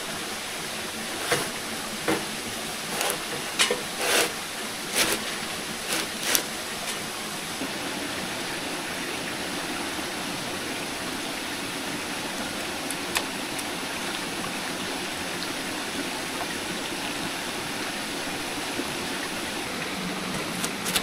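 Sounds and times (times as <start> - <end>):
stream water running: 0.0 - 21.0.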